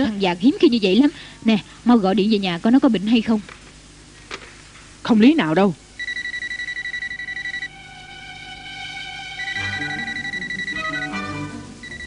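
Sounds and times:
electronic telephone ringing: 6.0s - 7.8s, 8.8s - 12.0s.

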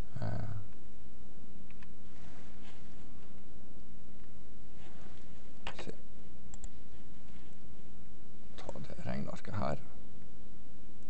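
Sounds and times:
low electrical hum: 0.0s - 11.0s
computer mouse clicks: 1.6s - 1.9s, 6.5s - 6.8s.

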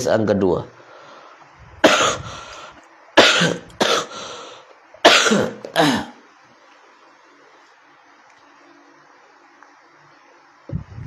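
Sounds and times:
person coughing: 1.8s - 2.4s, 3.2s - 4.2s, 5.0s - 6.2s.

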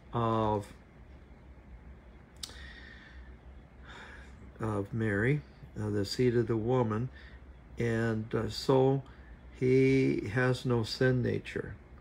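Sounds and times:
faint low hum: 0.0s - 12.0s
man's mouth click: 2.3s - 2.7s
soft breathing: 2.4s - 4.6s, 7.1s - 7.7s, 9.0s - 9.6s.

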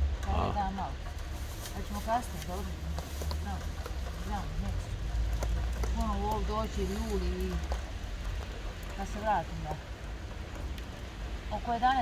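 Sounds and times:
woman speaking: 0.2s - 1.0s, 11.5s - 12.0s.

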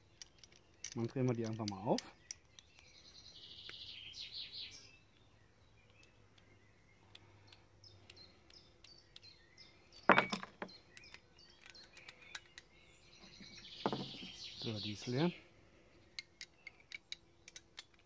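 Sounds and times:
small metallic clicks: 0.0s - 3.0s, 5.1s - 12.8s, 16.1s - 18.0s
birds chirping: 0.0s - 18.0s.

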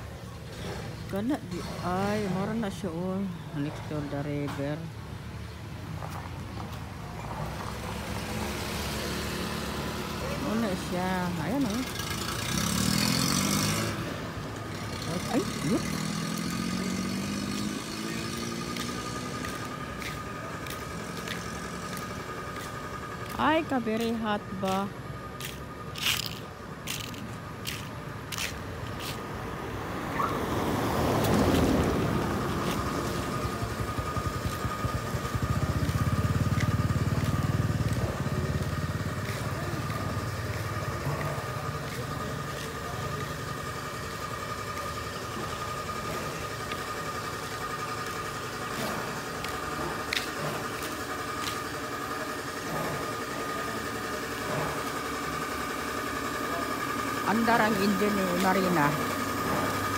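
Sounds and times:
road noise: 0.0s - 59.9s
vehicle engine whine: 0.0s - 59.9s.

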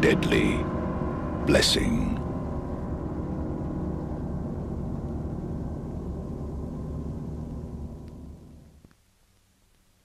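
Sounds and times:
low ringing drone: 0.0s - 8.8s.

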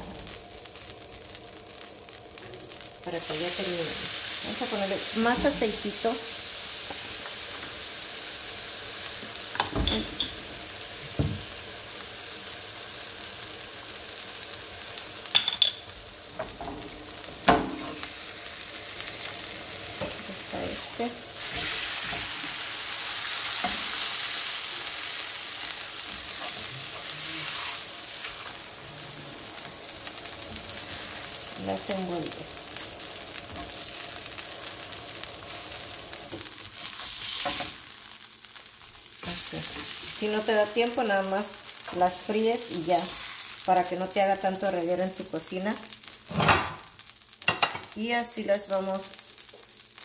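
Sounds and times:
tortilla sizzling in hot oil: 0.0s - 50.0s.

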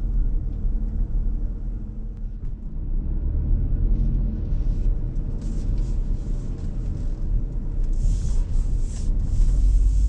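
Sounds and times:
car engine and tyres rumble: 0.0s - 10.0s.

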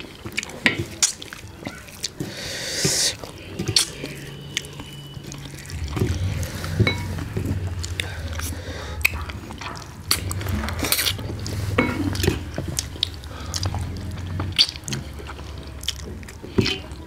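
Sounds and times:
lip smacks and mouth clicks: 0.0s - 17.0s
low steady hum: 2.5s - 17.0s.

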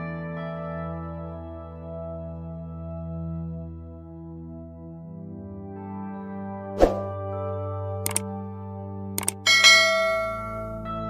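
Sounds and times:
soft background music: 0.0s - 11.0s
mouse clicks: 9.2s - 9.4s
bright bell chime: 9.5s - 11.0s.

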